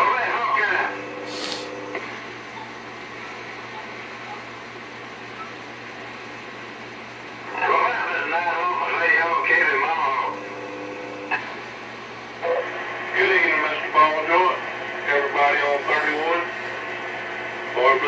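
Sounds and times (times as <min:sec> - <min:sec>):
voices over radio speaker: 0:00.0 - 0:02.8, 0:07.4 - 0:11.7, 0:12.3 - 0:18.0
radio static hiss: 0:00.0 - 0:18.0.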